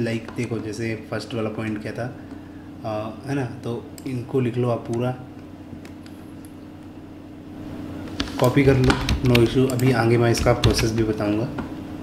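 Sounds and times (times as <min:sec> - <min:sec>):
low recording hum: 0:00.0 - 0:12.0.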